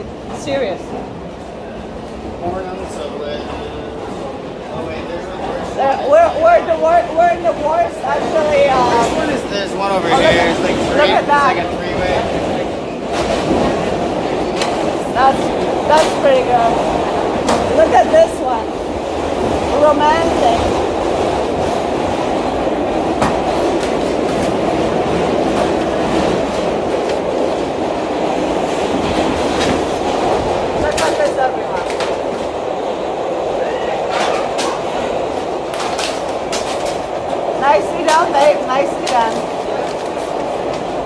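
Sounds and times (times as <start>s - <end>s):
subway train rumble: 0.0s - 41.0s
voices: 0.0s - 41.0s.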